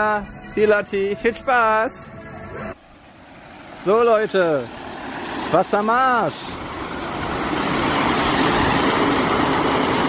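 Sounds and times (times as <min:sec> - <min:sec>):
water pouring into pond: 0:02.8 - 0:10.0.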